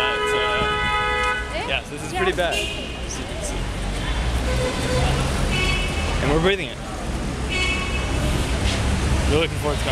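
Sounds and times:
street traffic rumble: 0.0 - 9.9.

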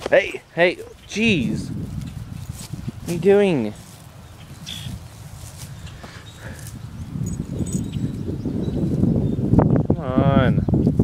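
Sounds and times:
low rustling: 0.0 - 9.0.

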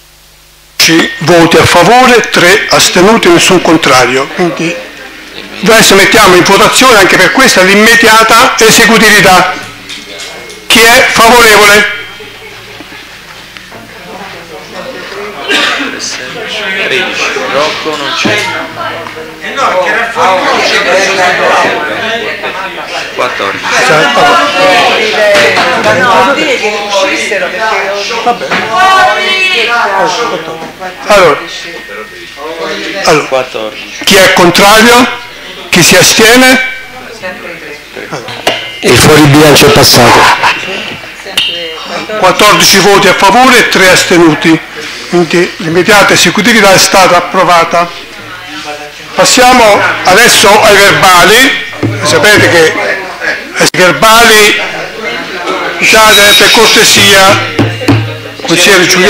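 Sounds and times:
murmur of voices: 0.0 - 59.0.

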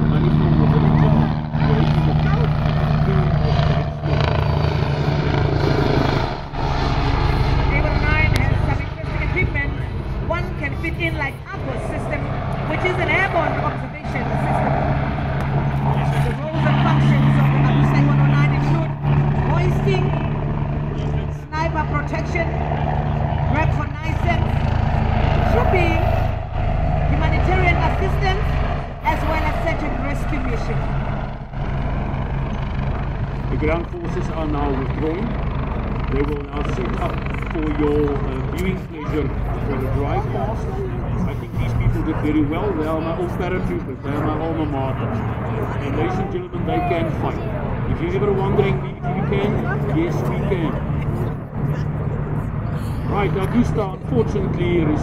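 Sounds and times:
people talking: 0.0 - 3.8, 7.7 - 14.8, 15.9 - 20.2, 21.0 - 22.6, 23.5 - 24.5, 25.4 - 26.1, 27.1 - 30.8, 33.5 - 35.3, 36.1 - 52.0, 52.7 - 55.0
ground vehicle engines: 0.0 - 55.0
helicopter engine drone: 0.0 - 55.0.

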